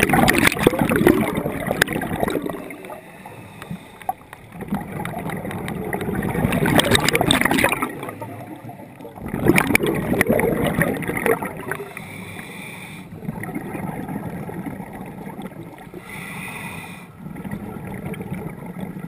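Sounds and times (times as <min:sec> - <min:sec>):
exhaled bubbles gurgling: 0:00.0 - 0:19.0
diver breathing through regulator: 0:02.8 - 0:04.3, 0:11.7 - 0:13.2, 0:16.0 - 0:17.2.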